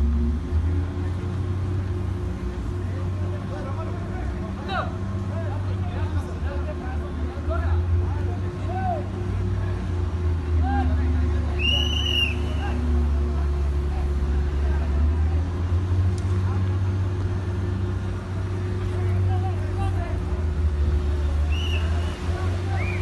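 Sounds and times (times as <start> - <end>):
distant voices: 0.0 - 23.0
heavy ship machinery drone: 0.0 - 23.0.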